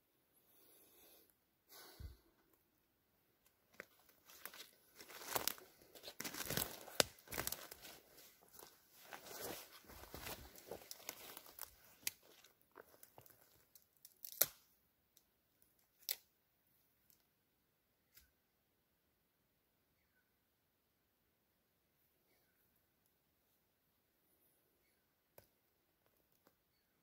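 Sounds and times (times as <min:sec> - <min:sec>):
twigs snapping: 0:03.7 - 0:08.0, 0:09.3 - 0:14.7, 0:15.9 - 0:16.3
footsteps crunching through undergrowth: 0:03.8 - 0:13.3.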